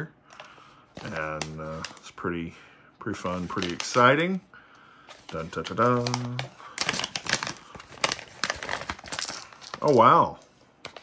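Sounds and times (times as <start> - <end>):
foil pouch crinkling: 5.3 - 10.3.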